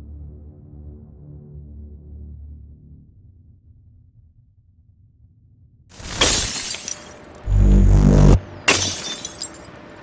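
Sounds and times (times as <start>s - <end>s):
deep bass hum: 7.4s - 8.5s
glitchy electronic crashes: 7.4s - 8.5s.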